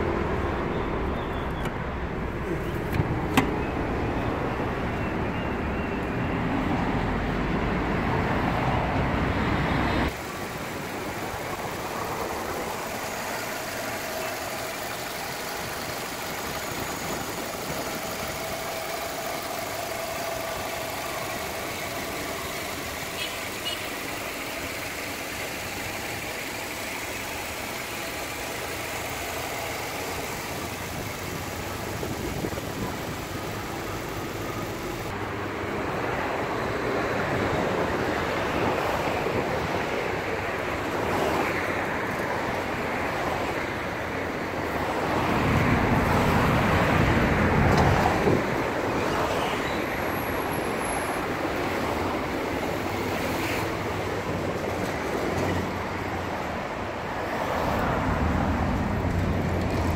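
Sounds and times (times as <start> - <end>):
car engine idling: 10.1 - 35.2.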